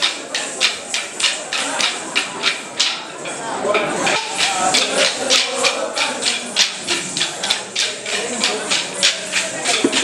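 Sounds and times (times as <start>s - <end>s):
wooden sticks clacking together: 0.0s - 10.0s.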